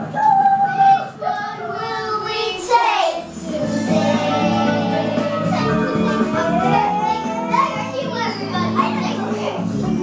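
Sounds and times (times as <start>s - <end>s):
children playing: 0.0s - 10.0s
children's song music: 0.0s - 10.0s
young children's voices: 0.0s - 10.0s.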